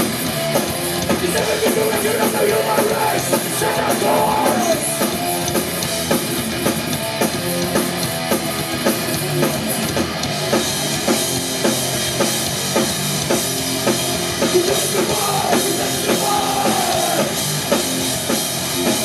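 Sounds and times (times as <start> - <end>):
bass guitar: 0.0 - 19.0
distorted electric guitars: 0.0 - 19.0
pounding drum kit: 0.0 - 19.0.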